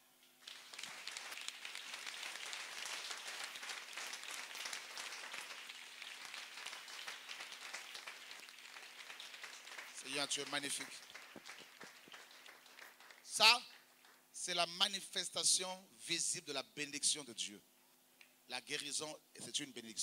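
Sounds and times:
crowd applauding: 0.0 - 14.2.

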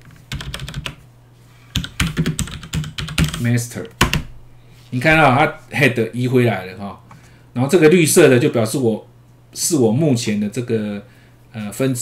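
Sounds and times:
computer keyboard keystrokes: 0.0 - 1.0, 1.8 - 3.4, 4.0 - 4.3.

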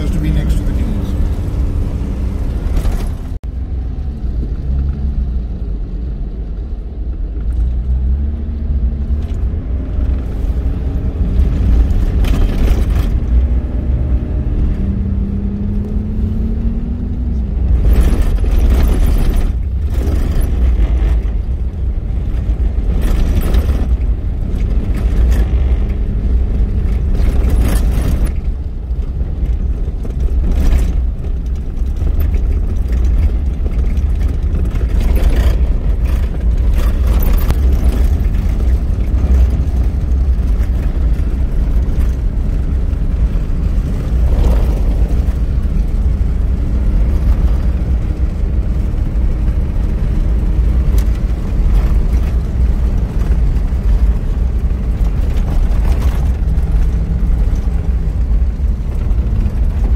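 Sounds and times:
vehicle engine and tyres rumbling: 0.0 - 59.9
vehicle knocks and rattles: 9.0 - 14.2, 16.7 - 59.9.

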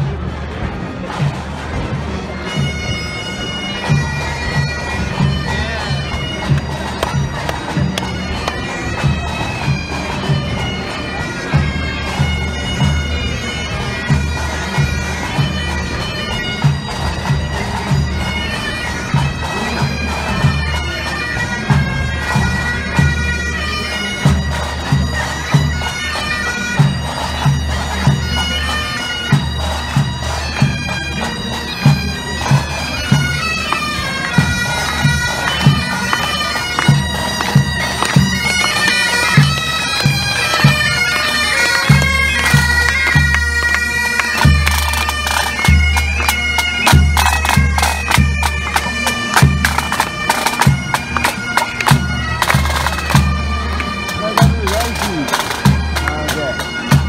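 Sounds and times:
bagpipes playing a tune: 0.0 - 57.0
snare drums marching rhythm: 3.9 - 10.6, 29.3 - 57.0.

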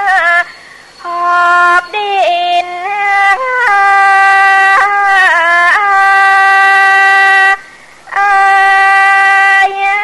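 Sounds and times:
woman singing long held notes: 0.0 - 10.0.

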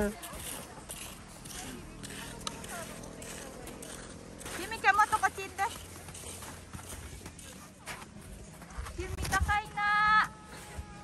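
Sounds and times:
footsteps in snow: 0.3 - 10.8.

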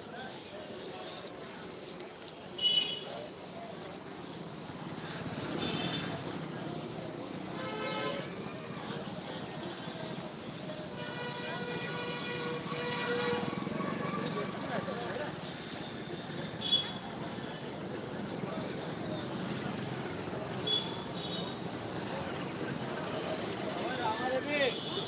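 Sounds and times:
vehicle engines running: 0.1 - 25.0.

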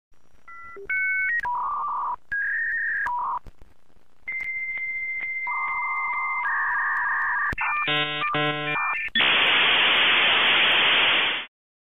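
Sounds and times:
touch-tone dialing beeps: 0.5 - 3.4
warbling modem chord: 4.3 - 11.3.

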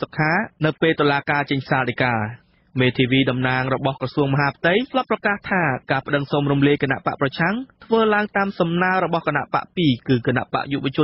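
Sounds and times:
radio news reader talking: 0.0 - 11.0.

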